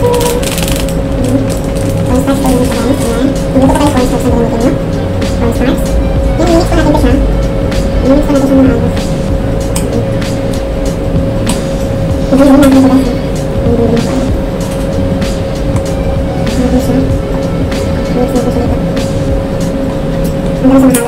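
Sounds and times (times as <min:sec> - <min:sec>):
steady hum: 0:00.0 - 0:21.0.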